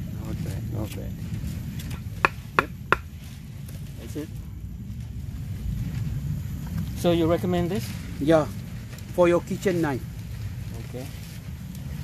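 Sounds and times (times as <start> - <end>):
wooden stake knocked into soil: 2.2 - 3.1.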